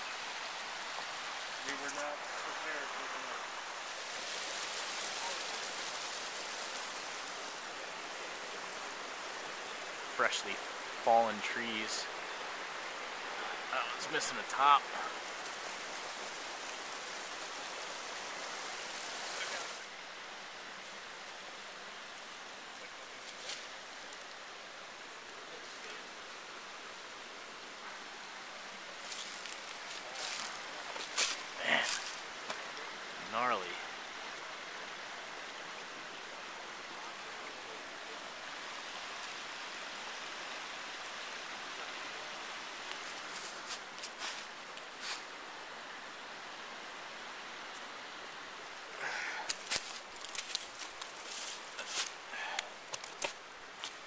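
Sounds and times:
forest stream flowing: 0:00.0 - 0:54.0.

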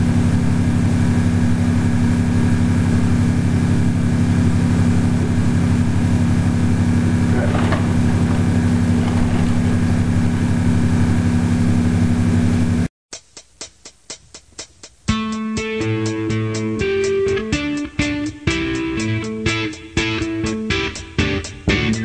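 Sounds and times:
electrical mains hum: 0:00.0 - 0:12.9.

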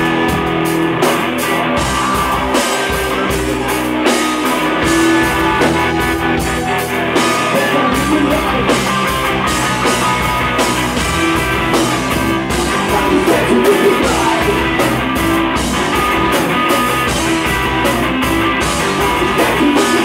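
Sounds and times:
drum kit: 0:00.0 - 0:20.0
electric guitar: 0:00.0 - 0:20.0.

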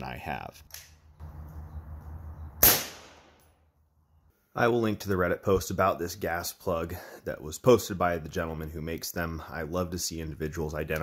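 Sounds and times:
suppressed rifle shot: 0:02.6 - 0:03.5.

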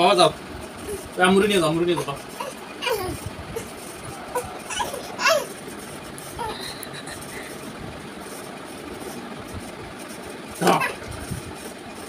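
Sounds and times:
background rumble and hum: 0:00.0 - 0:10.0.

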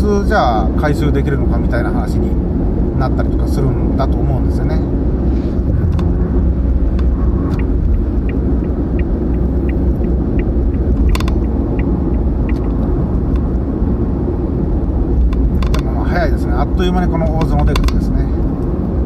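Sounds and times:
car road and engine rumble: 0:00.0 - 0:19.0
faint regular ticking: 0:06.9 - 0:13.5.

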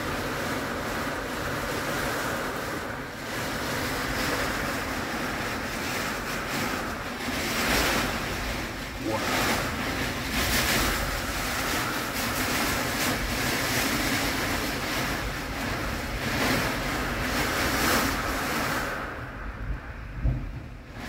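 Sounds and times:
heavy rain: 0:00.0 - 0:21.0
storm wind gusting: 0:00.0 - 0:21.0.

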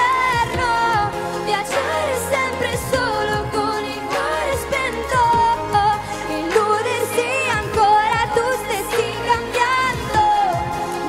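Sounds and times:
pop band with drums: 0:00.0 - 0:11.0
woman singing into a microphone: 0:00.0 - 0:11.0.

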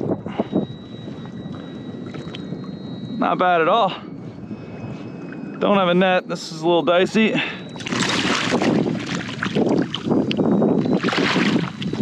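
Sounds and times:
wind on microphone: 0:00.0 - 0:12.0
fish splashing in water: 0:07.8 - 0:10.1, 0:11.0 - 0:12.0.

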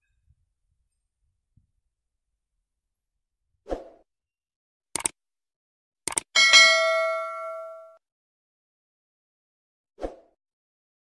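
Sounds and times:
short clicks: 0:04.9 - 0:05.2, 0:06.0 - 0:06.3
bright bell ding: 0:06.4 - 0:08.0.

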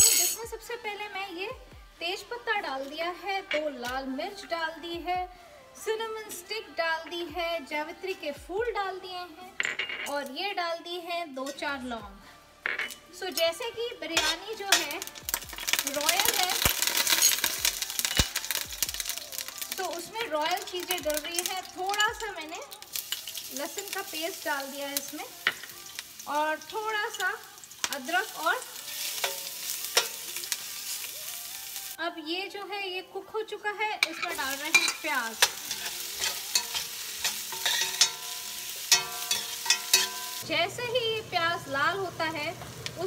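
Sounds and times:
spoon clinking against pan: 0:00.0 - 0:00.4, 0:29.1 - 0:30.4, 0:34.0 - 0:40.4
spices sizzling in hot oil: 0:00.0 - 0:04.8, 0:12.6 - 0:32.0, 0:33.8 - 0:43.0.

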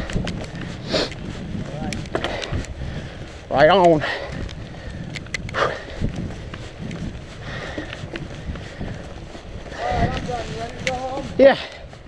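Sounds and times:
bike clicks and knocks on bumps: 0:00.0 - 0:12.0
bike tires rolling through leaves: 0:00.0 - 0:12.0.

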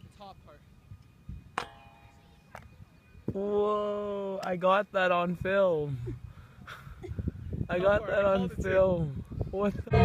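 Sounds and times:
frisbee knocking metal goalpost: 0:01.6 - 0:02.2.

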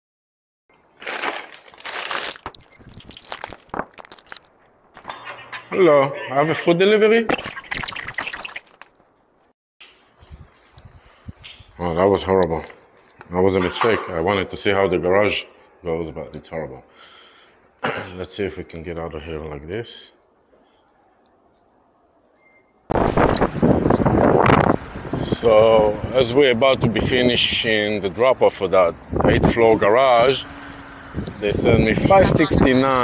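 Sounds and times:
rustling and clicking handling noise: 0:01.0 - 0:05.7
wind buffeting microphone: 0:22.9 - 0:27.8, 0:29.0 - 0:30.3, 0:31.0 - 0:33.0.

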